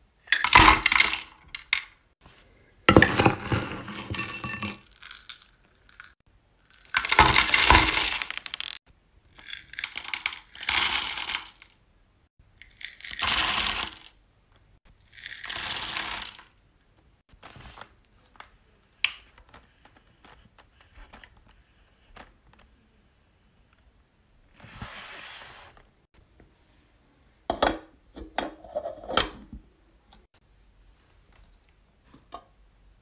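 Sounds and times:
wax beads clattering into metal pot: 0.3 - 1.8, 2.9 - 8.8, 9.4 - 11.8, 12.6 - 14.2, 15.0 - 16.6.

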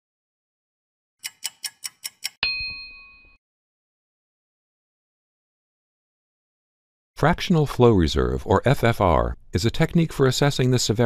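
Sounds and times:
clock-like ticks: 1.2 - 2.4
bright bell ding: 2.4 - 3.4.

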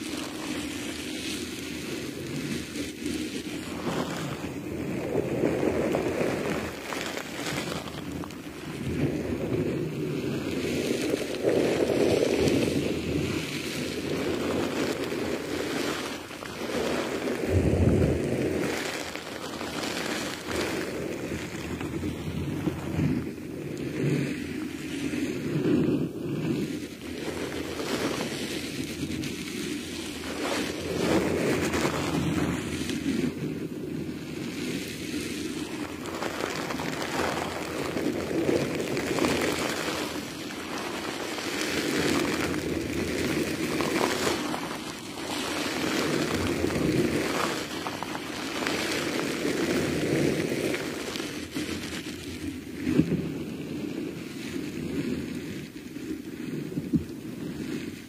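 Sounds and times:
squid squelching and rustling: 9.6 - 23.5, 34.2 - 53.1.

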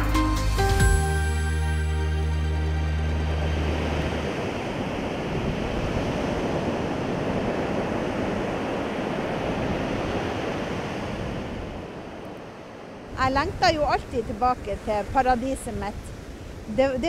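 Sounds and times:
surf breaking on beach: 3.0 - 17.0.

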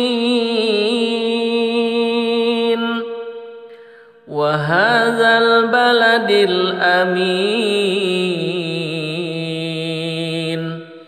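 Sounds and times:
person reciting on one pitch: 0.0 - 3.6, 4.2 - 11.0.

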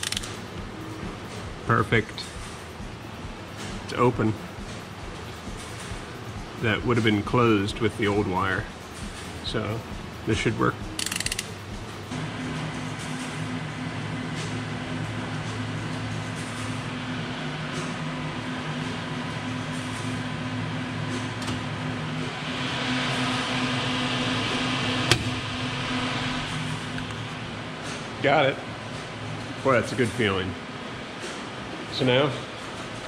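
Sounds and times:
sharp click: 0.0 - 0.4, 11.0 - 11.5
binding machine humming: 0.0 - 29.6.

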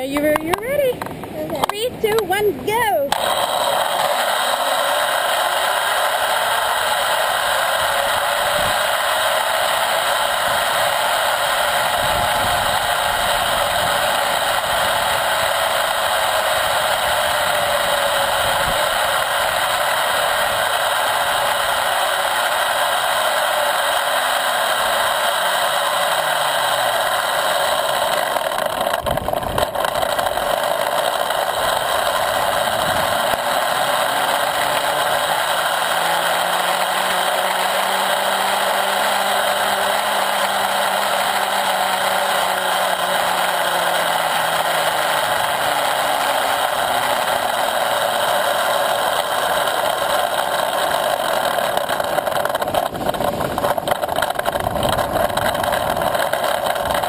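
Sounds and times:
zipline pulleys rolling on cable: 0.0 - 57.0.

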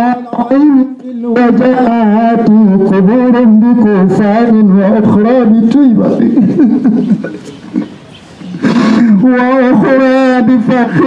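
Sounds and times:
man chanting through loudspeaker: 0.0 - 6.2, 9.1 - 11.0.

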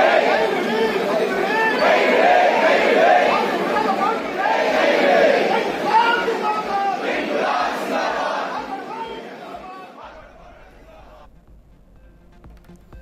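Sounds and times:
crowd shouting: 0.0 - 11.3.

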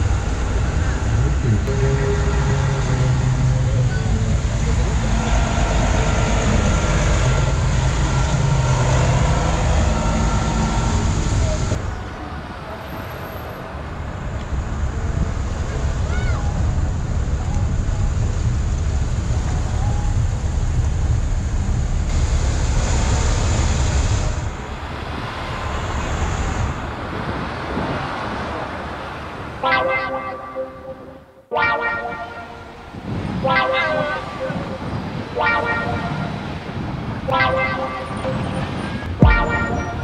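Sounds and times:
vehicles rolling past on asphalt: 0.0 - 31.2, 32.2 - 40.0
car horn toot: 29.6 - 36.6, 37.3 - 40.0
wind buffeting microphone: 32.8 - 37.3.

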